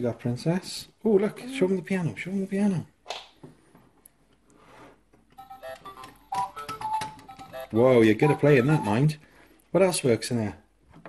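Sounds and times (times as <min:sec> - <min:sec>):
toy keyboard beeping notes: 0:05.4 - 0:09.0.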